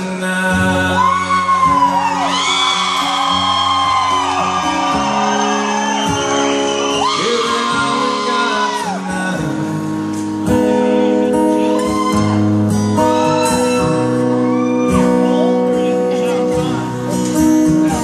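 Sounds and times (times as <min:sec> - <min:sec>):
acoustic guitar chords: 0:00.0 - 0:18.0.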